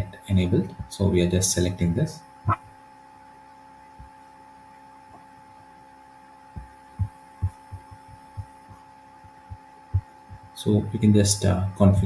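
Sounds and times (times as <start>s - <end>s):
faint electrical hum: 0.0s - 12.0s
soft low thumps: 0.7s - 1.1s, 6.5s - 10.6s.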